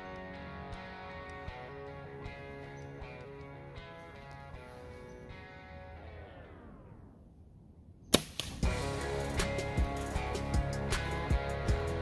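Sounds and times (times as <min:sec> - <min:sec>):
bow shot crack: 0:08.0 - 0:08.8
arrow smack: 0:08.1 - 0:08.7
music with drum beats: 0:08.6 - 0:12.0.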